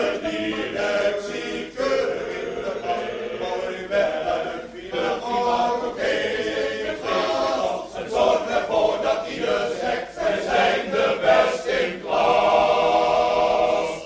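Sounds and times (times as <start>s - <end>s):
choir singing: 0.0s - 14.0s.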